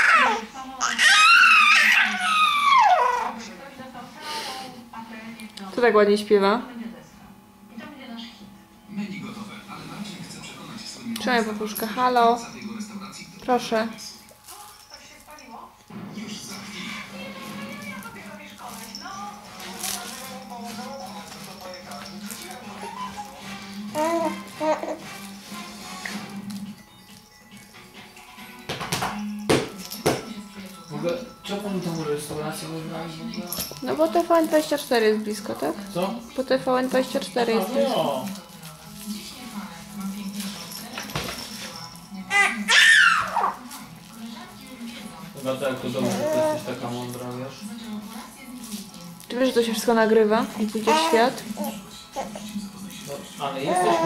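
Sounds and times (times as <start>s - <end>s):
baby squealing: 0.0s - 3.4s, 42.3s - 43.6s, 53.7s - 54.0s.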